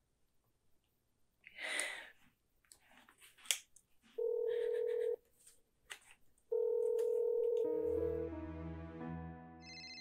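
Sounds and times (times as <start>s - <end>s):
telephone ringback tone: 4.2s - 5.2s, 6.5s - 8.3s.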